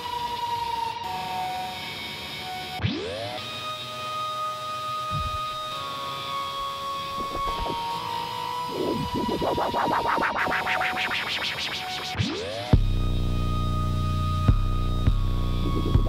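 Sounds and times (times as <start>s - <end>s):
vinyl scratching: 5.1s - 5.6s, 6.6s - 12.4s, 15.6s - 16.0s
held synth tones: 7.0s - 12.4s.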